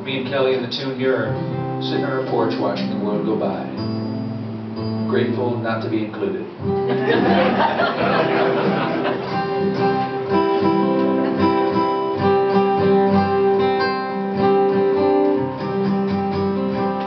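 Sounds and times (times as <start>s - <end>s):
acoustic guitar playing: 0.0s - 17.0s.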